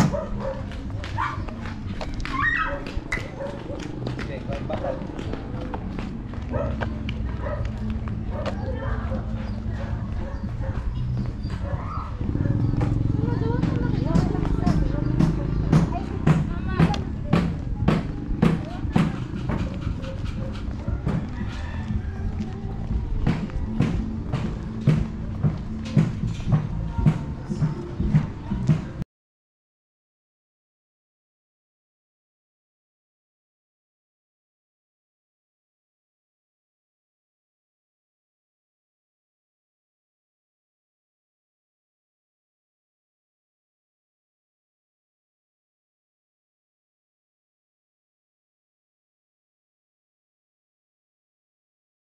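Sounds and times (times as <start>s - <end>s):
dog barking: 0.0s - 1.4s, 2.5s - 4.0s, 4.7s - 5.2s, 6.5s - 12.8s, 19.4s - 21.8s
footsteps on concrete: 0.0s - 29.0s
people's voices: 0.1s - 29.0s.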